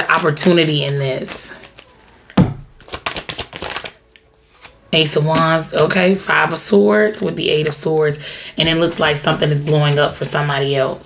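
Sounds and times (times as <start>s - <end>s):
cards being shuffled: 0.0s - 6.2s, 8.9s - 10.5s.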